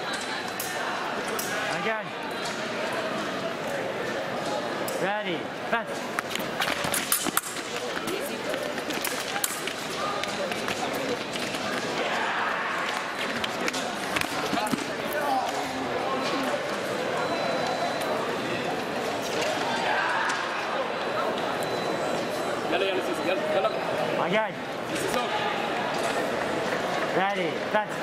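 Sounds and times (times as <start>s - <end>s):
crowd chatter: 0.0s - 28.0s
feet striking fencing strip: 6.0s - 11.8s.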